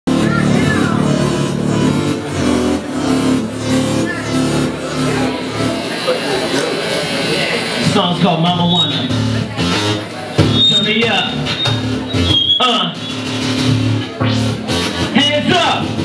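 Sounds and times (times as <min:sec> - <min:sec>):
live electronic band music: 0:00.0 - 0:16.0
voices: 0:00.1 - 0:15.6.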